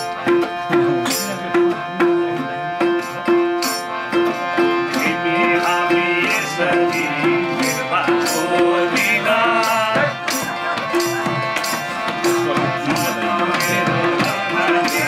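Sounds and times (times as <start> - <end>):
hand drums: 0.0 - 15.0
plucked strings: 0.0 - 15.0
sustained harmonium: 0.0 - 15.0
man singing: 0.6 - 3.7, 4.5 - 15.0.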